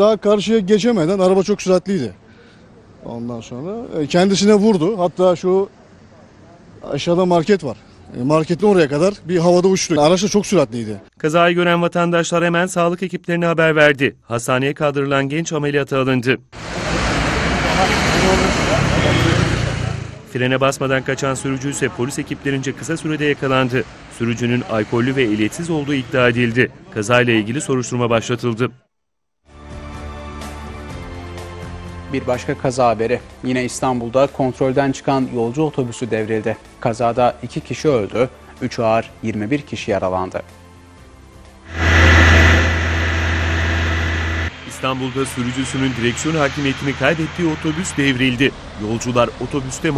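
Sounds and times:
loud steady rushing noise: 16.6s - 20.1s, 41.7s - 49.1s
vehicle engine low hum: 41.7s - 49.4s.

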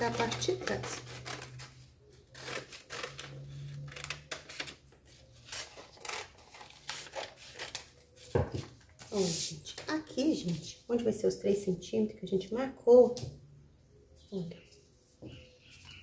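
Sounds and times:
paper rustling: 0.1s - 10.7s.

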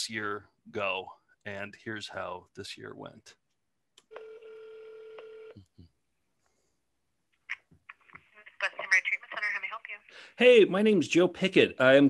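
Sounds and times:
telephone ringback tone: 4.1s - 5.6s.

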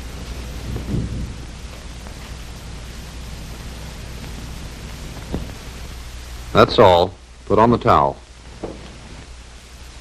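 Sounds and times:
film soundtrack hiss and hum: 0.0s - 10.0s.

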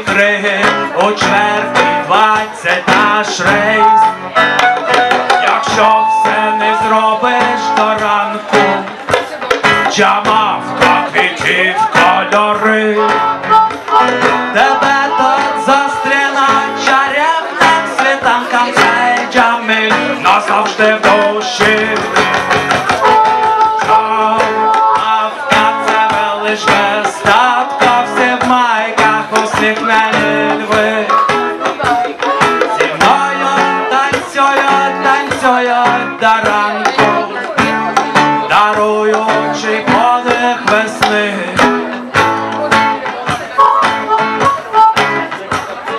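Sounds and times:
hand drum rhythm: 0.0s - 45.9s
second guitar: 0.0s - 45.9s
strummed acoustic guitar: 0.0s - 45.9s.

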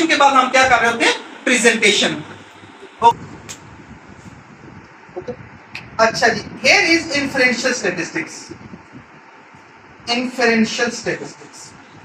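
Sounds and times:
person speaking: 0.0s - 3.3s
faint rumble: 2.2s - 7.4s.

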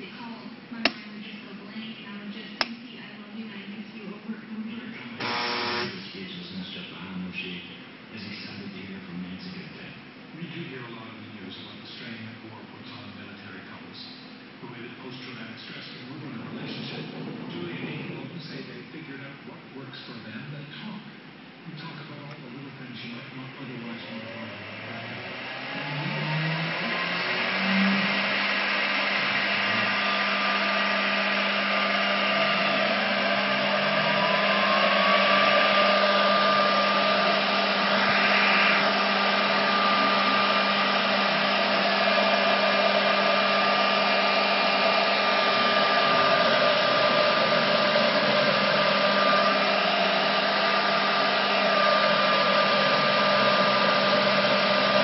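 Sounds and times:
spindle motor whine: 5.2s - 6.2s, 23.6s - 55.0s.

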